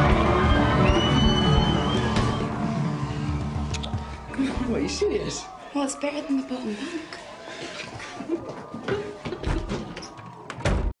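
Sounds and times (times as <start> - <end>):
door thudding: 9.3 - 10.9.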